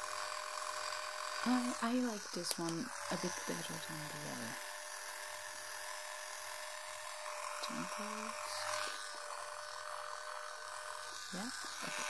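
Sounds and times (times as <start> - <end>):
electric cleansing brush buzzing: 0.0 - 12.0.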